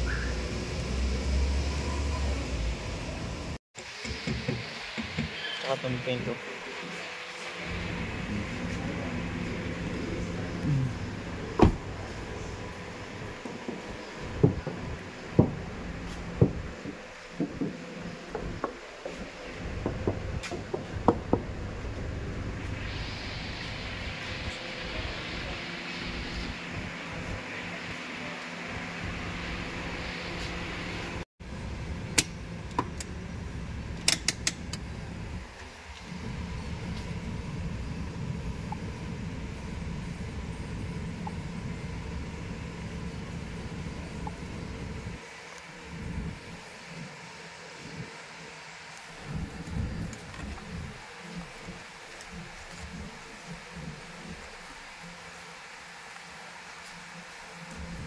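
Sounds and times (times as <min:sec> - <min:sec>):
car engine idling: 0:07.5 - 0:23.3.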